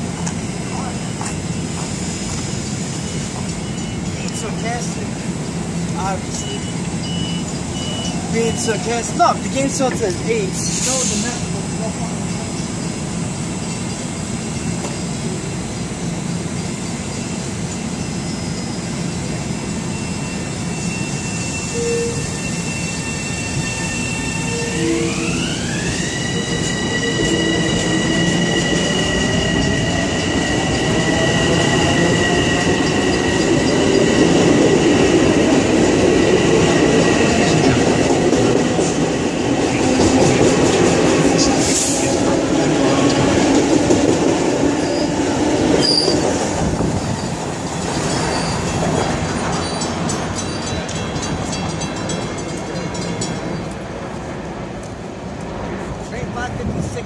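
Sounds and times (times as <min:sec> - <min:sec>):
train wheels rolling: 0:00.0 - 0:57.0.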